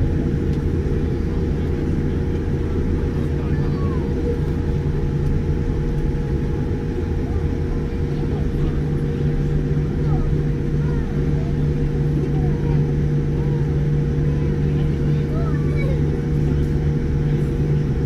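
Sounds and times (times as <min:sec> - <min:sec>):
constant cabin hum: 0:00.0 - 0:18.0
faint passenger voices: 0:00.0 - 0:18.0
jet engines idling rumble: 0:00.0 - 0:18.0.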